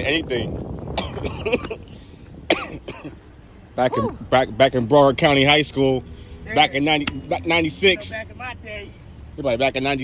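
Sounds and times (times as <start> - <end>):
man coughing: 1.0 - 3.3.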